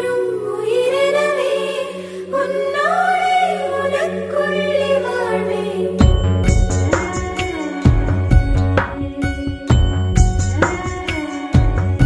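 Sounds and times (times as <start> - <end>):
song with drums and deep bass: 6.0 - 12.0.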